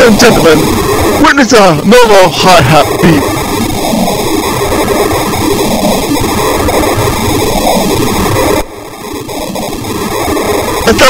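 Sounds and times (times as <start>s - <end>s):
noisy electronic music: 0.0s - 11.0s.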